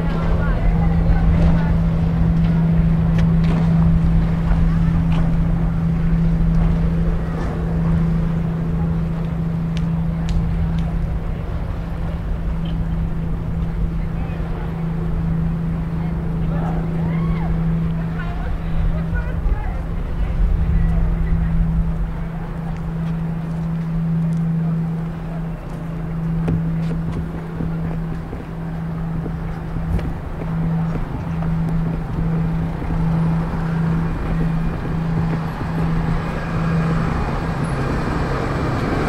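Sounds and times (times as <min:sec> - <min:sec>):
faint voices of people: 0:00.0 - 0:39.0
low rumble: 0:00.0 - 0:39.0
steady low hum: 0:00.0 - 0:39.0.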